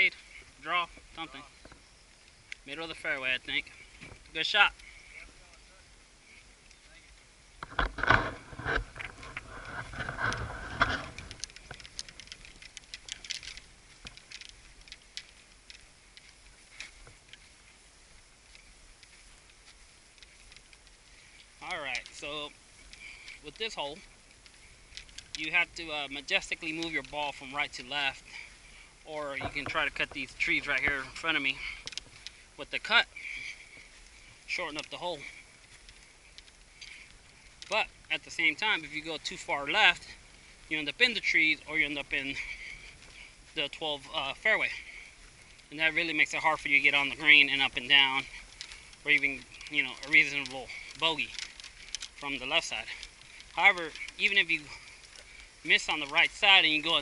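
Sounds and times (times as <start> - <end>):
man speaking: 0.0 - 1.6, 2.6 - 3.7, 21.6 - 22.6, 23.4 - 24.0, 25.4 - 31.8, 32.6 - 33.2, 34.5 - 35.4, 37.7 - 42.7, 43.5 - 45.0, 45.7 - 48.4, 49.0 - 51.4, 52.2 - 53.0, 53.6 - 54.9, 55.6 - 57.0
golf clubs rattling in bag: 7.6 - 17.5, 29.2 - 57.0.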